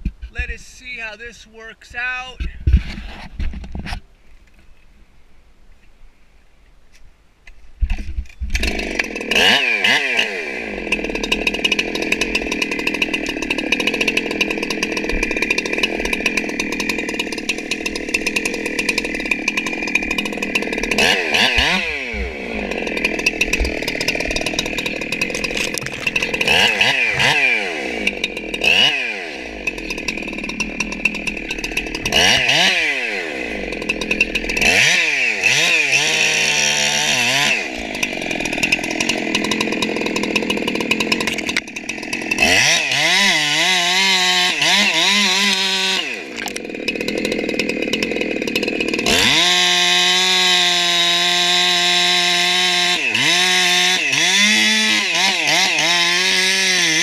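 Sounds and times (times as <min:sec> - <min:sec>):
chainsaw cutting wood: 0:00.0 - 0:04.0, 0:07.8 - 0:57.0
chainsaw revving: 0:08.5 - 0:57.0.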